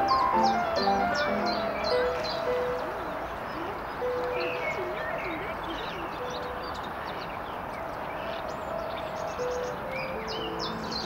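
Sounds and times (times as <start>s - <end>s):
small birds chirping: 0.0s - 11.0s
steady background murmur: 0.0s - 11.0s.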